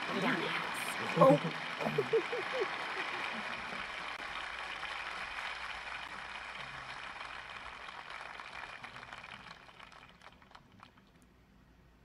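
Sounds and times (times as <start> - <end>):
studio audience applause: 0.0 - 11.2.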